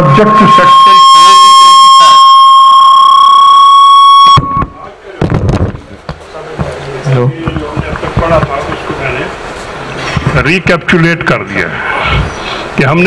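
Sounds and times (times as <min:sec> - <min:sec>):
microphone feedback howl: 0:00.0 - 0:04.9
knocks: 0:07.4 - 0:09.0.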